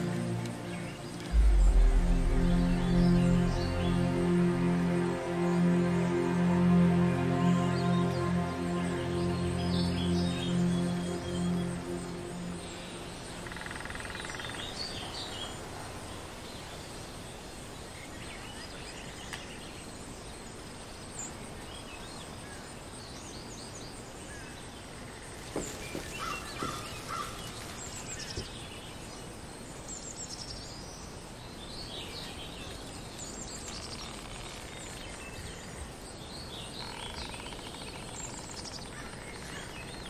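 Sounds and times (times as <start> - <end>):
steady background hiss: 0.0 - 40.0.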